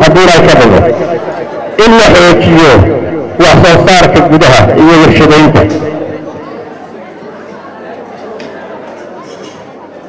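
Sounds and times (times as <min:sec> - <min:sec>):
man's amplified voice echoing: 0:00.0 - 0:06.6
indistinct chatter of people: 0:00.0 - 0:10.0.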